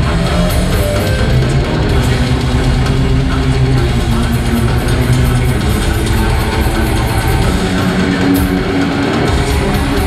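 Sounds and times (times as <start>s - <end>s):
bass notes: 0.0s - 10.0s
drum kit: 0.0s - 10.0s
electric guitar: 0.0s - 10.0s.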